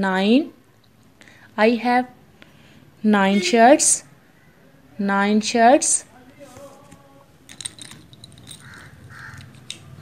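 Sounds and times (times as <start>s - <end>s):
light handling clicks and rattles: 7.5s - 10.0s.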